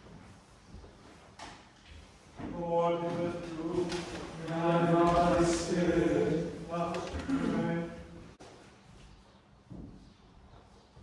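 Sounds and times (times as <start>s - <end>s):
faint shuffling: 0.0s - 11.0s
man chanting: 2.4s - 8.2s.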